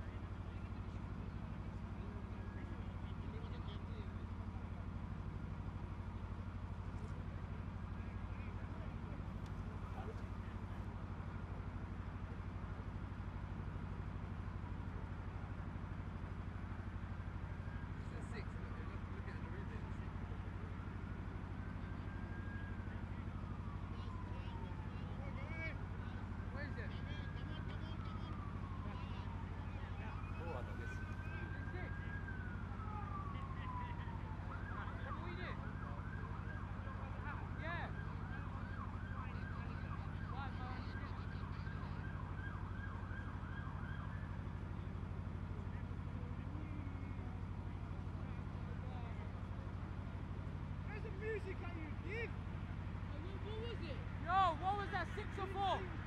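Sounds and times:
faint emergency siren: 0.0 - 56.0.

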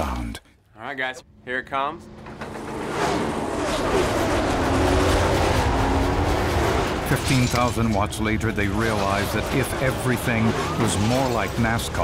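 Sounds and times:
race cars passing at full throttle: 2.1 - 7.1.

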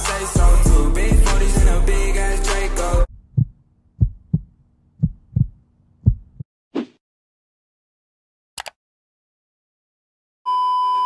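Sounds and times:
heartbeat thumps: 3.1 - 6.4.

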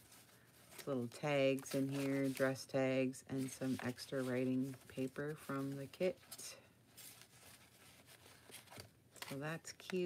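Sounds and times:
paper rustling: 0.0 - 2.7, 3.3 - 9.9.

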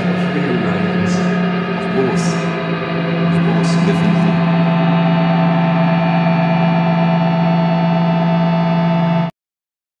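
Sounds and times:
sustained ambient drone: 0.0 - 9.3.

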